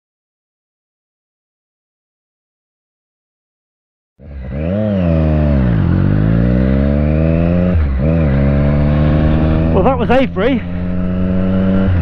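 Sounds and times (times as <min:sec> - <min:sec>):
motorcycle engine revving: 0:04.2 - 0:12.0
wind rush: 0:08.1 - 0:09.9.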